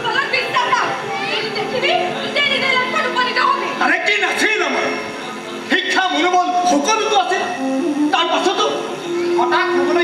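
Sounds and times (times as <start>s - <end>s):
actors speaking with raised voices: 0.0s - 10.0s.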